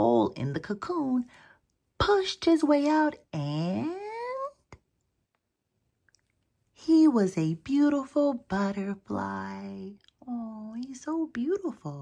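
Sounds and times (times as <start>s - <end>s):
woman speaking: 0.0s - 1.4s, 2.0s - 4.8s, 6.8s - 12.0s.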